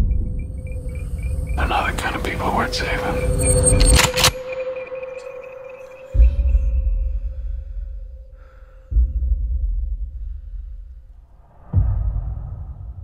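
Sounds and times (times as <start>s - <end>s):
deep booming low hits: 6.2s - 13.0s.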